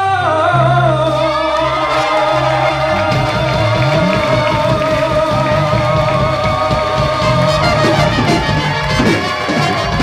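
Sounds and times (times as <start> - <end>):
bass guitar: 0.0 - 10.0
drums: 0.0 - 10.0
piano: 0.0 - 10.0
trumpet: 1.0 - 10.0.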